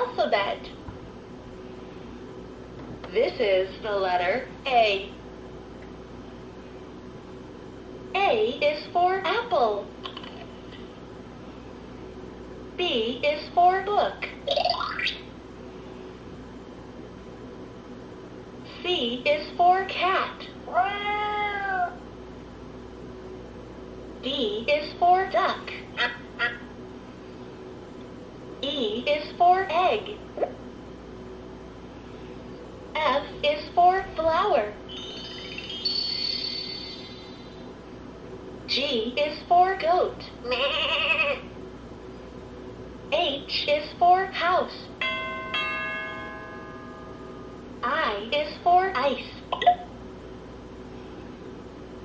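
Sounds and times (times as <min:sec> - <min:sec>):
toy two-note electronic bell chime: 0:34.9 - 0:37.4, 0:45.0 - 0:47.5
toy recorded voice speaking: 0:38.7 - 0:41.5, 0:47.8 - 0:49.4.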